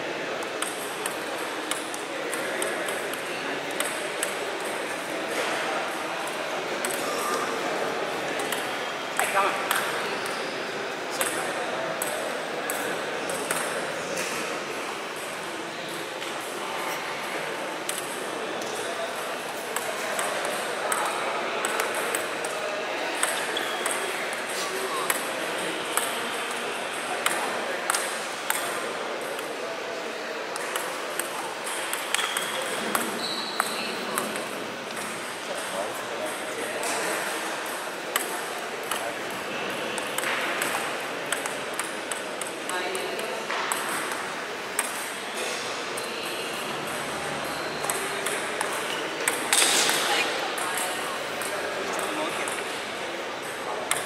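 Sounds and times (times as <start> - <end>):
people talking: 0.0 - 54.0
table tennis ball clicking: 47.8 - 52.8.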